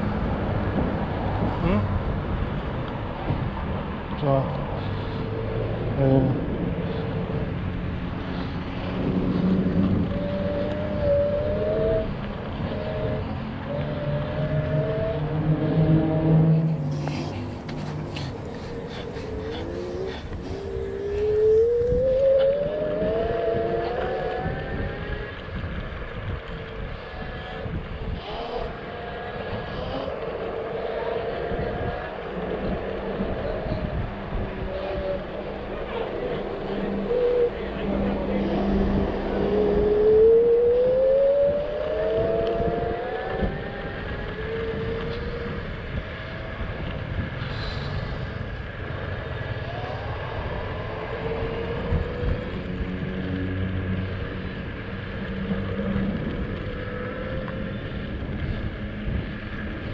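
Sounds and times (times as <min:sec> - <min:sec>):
wind: 0:00.0 - 0:59.9
tyres rumbling: 0:04.8 - 0:25.0, 0:25.6 - 0:59.9
electric scooter motor whining: 0:06.6 - 0:59.9.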